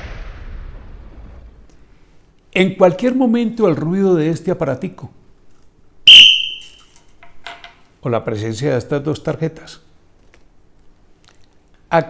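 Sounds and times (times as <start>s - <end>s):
referee's whistle blast: 6.0s - 6.9s.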